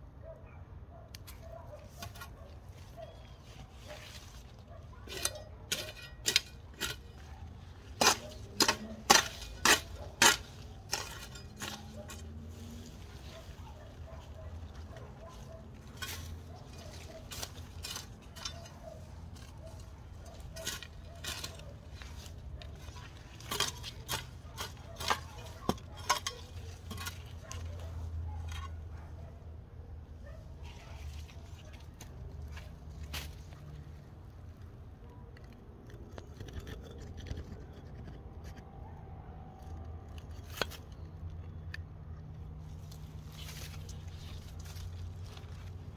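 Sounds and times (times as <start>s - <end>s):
hoe chopping into soil: 7.9s - 12.9s.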